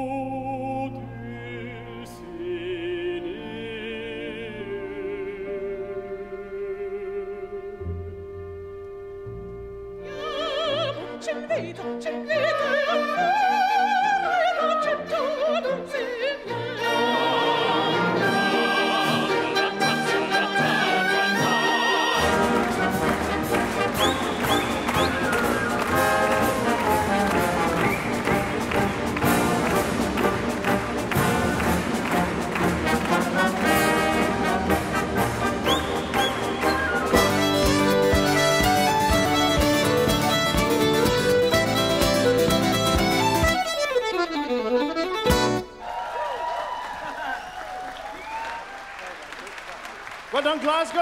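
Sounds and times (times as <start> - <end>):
orchestral music with brass: 0.0 - 45.8
accordion guitars and fiddle: 8.6 - 45.8
audience applause and cheering: 17.0 - 41.0, 45.6 - 51.0.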